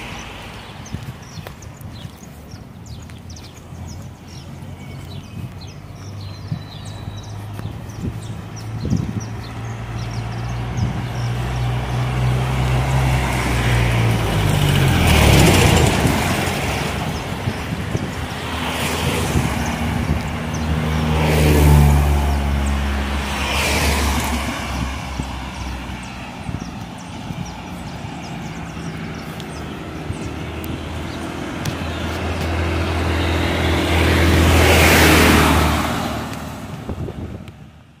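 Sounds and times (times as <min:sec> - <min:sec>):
truck passing: 0:00.0 - 0:01.4, 0:02.4 - 0:37.9
cars passing: 0:00.0 - 0:38.0.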